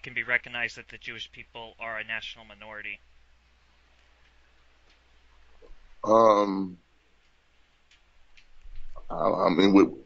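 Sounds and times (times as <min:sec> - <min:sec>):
person speaking: 0:00.0 - 0:03.0
low steady hum: 0:00.0 - 0:10.0
faint soft clicks: 0:03.9 - 0:05.8, 0:07.2 - 0:09.0.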